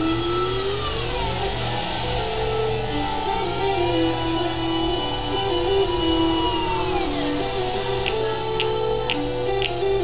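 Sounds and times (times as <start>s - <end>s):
jet engines whining on takeoff: 0.0s - 10.0s.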